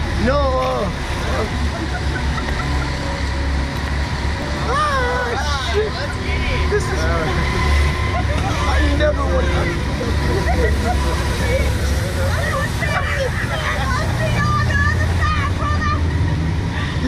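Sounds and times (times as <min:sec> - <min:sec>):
men laughing and exclaiming: 0:00.4 - 0:03.4, 0:04.4 - 0:17.0.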